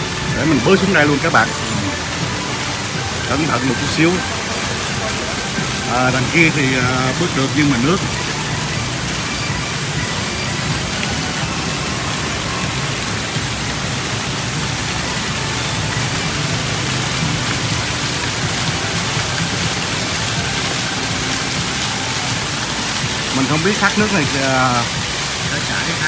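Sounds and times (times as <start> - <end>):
fountain jets splashing: 0.0 - 26.0
waterfall pouring into pond: 0.0 - 26.0.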